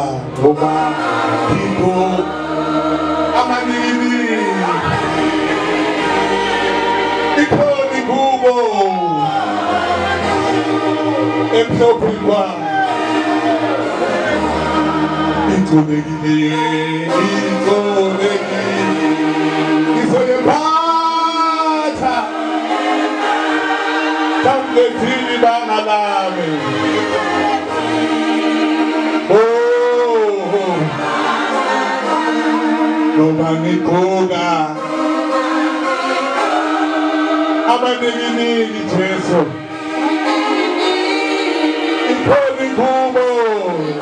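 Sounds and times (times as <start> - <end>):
group singing in harmony: 0.0 - 44.0.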